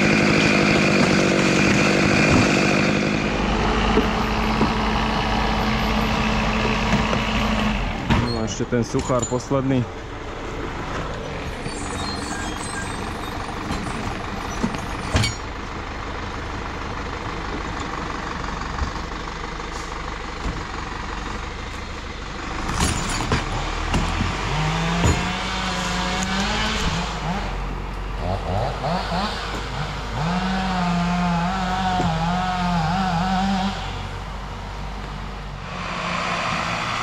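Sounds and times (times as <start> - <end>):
tractor diesel engine running: 0.0 - 37.0.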